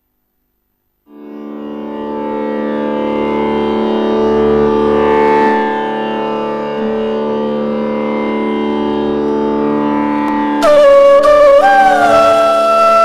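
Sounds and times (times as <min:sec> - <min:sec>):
musical drone: 0:01.1 - 0:13.0.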